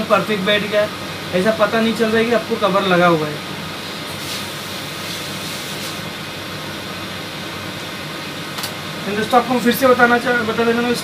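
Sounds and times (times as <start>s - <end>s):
air conditioner hum: 0.0s - 11.0s
even hiss: 0.6s - 6.3s.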